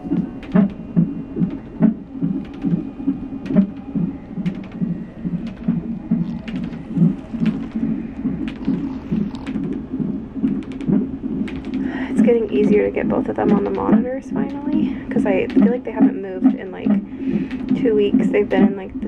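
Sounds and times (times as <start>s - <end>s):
whooshing fetal heartbeat: 0.0s - 19.0s.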